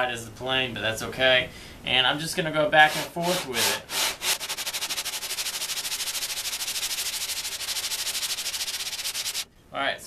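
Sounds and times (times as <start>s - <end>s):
plane sole scrubbed on sandpaper: 2.8s - 9.5s.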